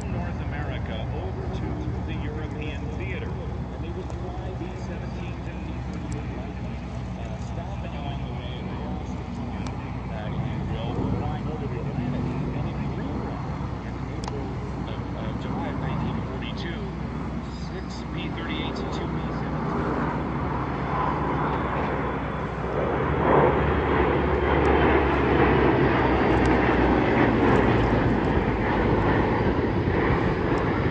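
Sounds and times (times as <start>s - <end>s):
propeller planes droning overhead: 0.0s - 30.9s.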